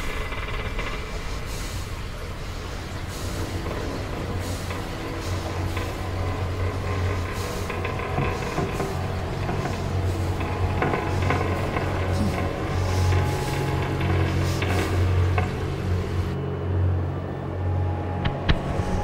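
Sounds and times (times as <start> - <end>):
low machinery hum: 0.0 - 19.0.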